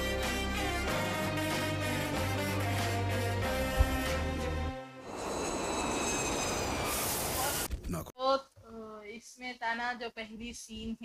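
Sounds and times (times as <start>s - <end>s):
jet engine rush with whine: 5.1s - 7.7s.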